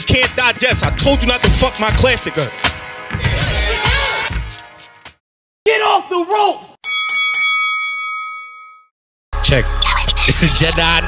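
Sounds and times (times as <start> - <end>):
boxing ring bell ringing: 6.8 - 8.9.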